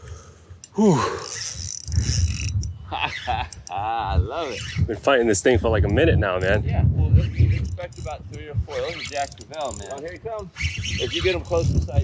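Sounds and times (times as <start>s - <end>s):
fishing reel whirring: 0.6s - 3.8s, 6.0s - 12.0s.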